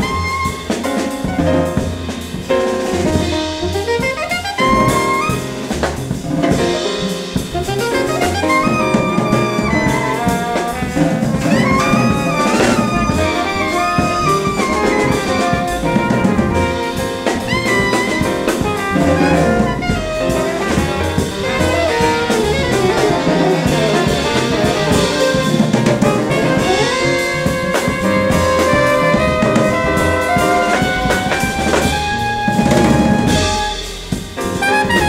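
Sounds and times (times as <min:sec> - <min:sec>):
alto saxophone: 0:00.0 - 0:01.8, 0:02.9 - 0:35.0
trumpet: 0:00.0 - 0:01.9, 0:02.8 - 0:35.0
double bass: 0:00.0 - 0:35.0
drum kit with ride cymbal: 0:00.0 - 0:35.0
piano: 0:00.0 - 0:35.0.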